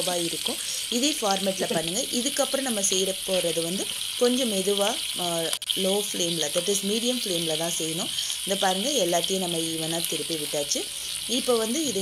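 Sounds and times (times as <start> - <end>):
person talking: 0.0 - 2.4, 8.0 - 12.0
chicken sizzling in oil: 0.0 - 12.0.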